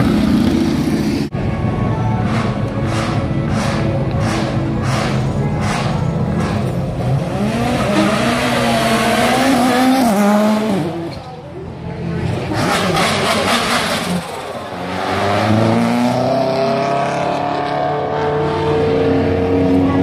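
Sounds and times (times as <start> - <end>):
racing car engines accelerating: 0.0 - 20.0.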